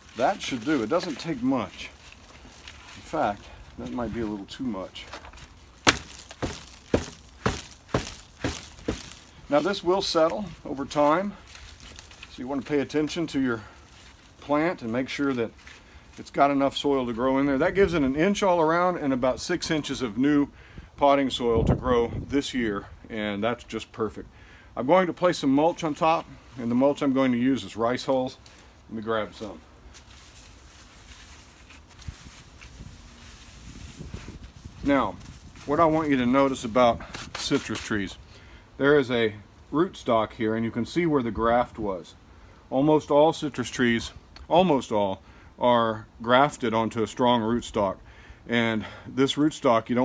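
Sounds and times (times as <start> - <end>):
hands patting soil: 0.0 - 16.8, 25.5 - 38.1.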